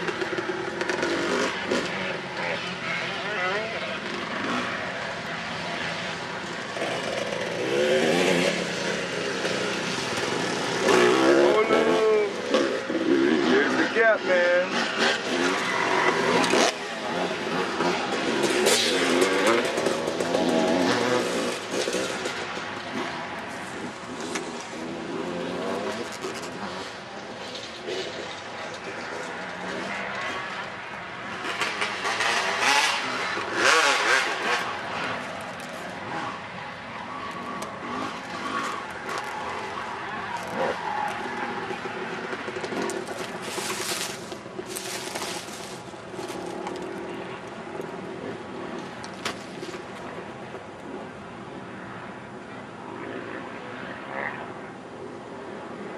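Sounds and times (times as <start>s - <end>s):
dirt bike engine revving: 0.0s - 27.0s, 31.2s - 35.3s, 37.4s - 47.4s.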